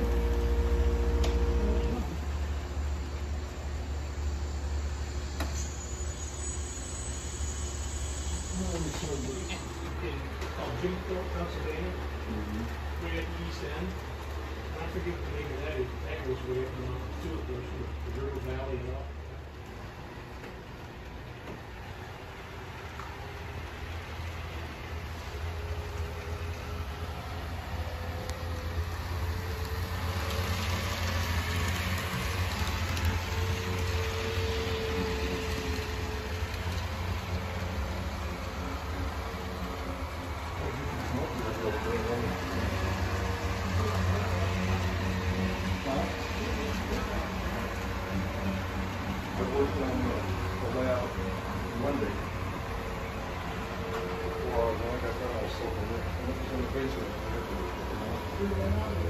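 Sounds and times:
model train motor hum: 0.0 - 59.0
wheels rattling on rails: 0.0 - 59.0.

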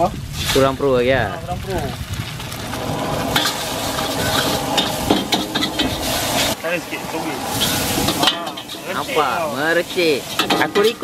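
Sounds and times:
noodles sizzling in a wok: 0.3 - 11.0
metal utensils scraping a wok: 2.6 - 11.0.

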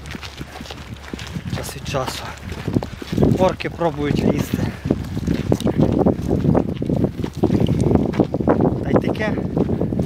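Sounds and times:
wind noise on microphone: 0.0 - 10.0
man speaking: 1.6 - 2.4, 3.3 - 4.7.

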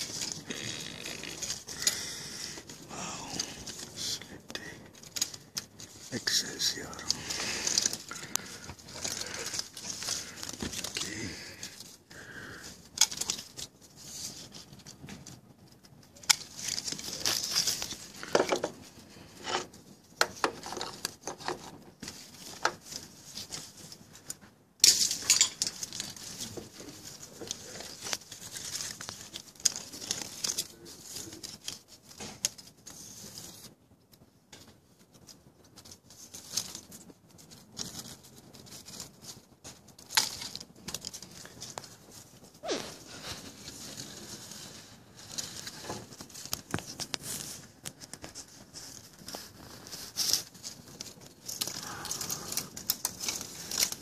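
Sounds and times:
leaves and branches rustling: 0.0 - 54.0.

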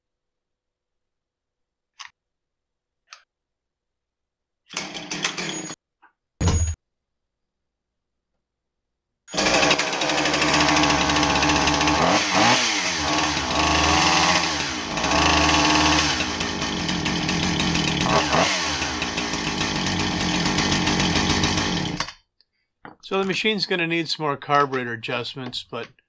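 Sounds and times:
chainsaw engine idling: 4.8 - 5.6, 9.3 - 22.0.

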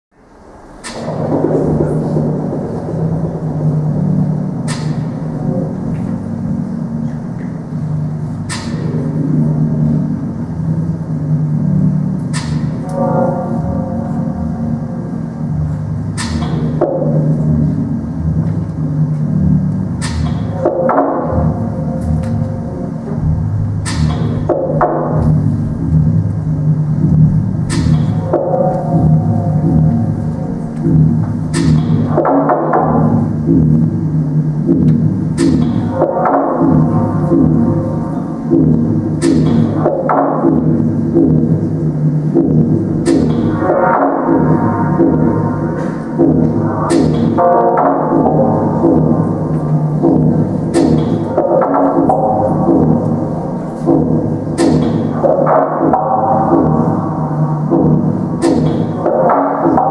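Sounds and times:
low sustained drone: 0.2 - 55.4
sharp struck accent: 12.3 - 18.4.

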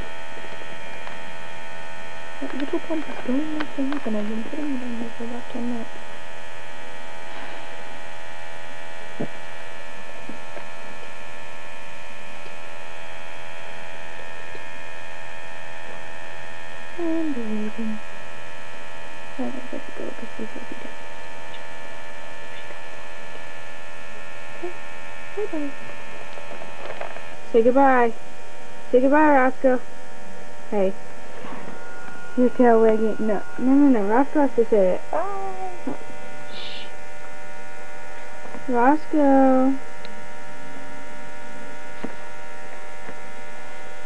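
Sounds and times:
electric air pump humming: 0.0 - 14.5, 19.0 - 44.0.

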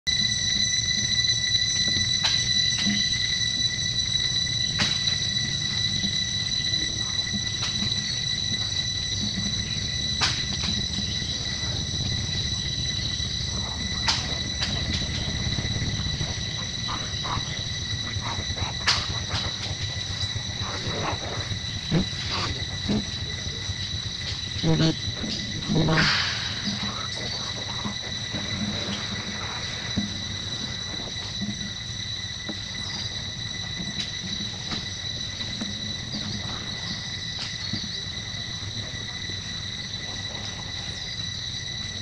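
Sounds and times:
high-pitched insect chorus: 0.1 - 42.0
low rumble: 2.6 - 37.1.

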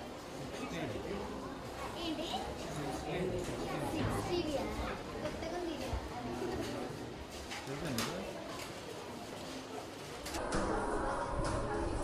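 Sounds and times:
children chattering: 0.4 - 12.0.

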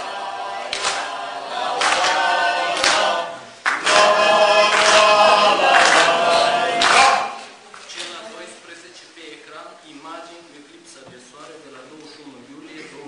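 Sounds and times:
choir singing: 0.0 - 7.5.

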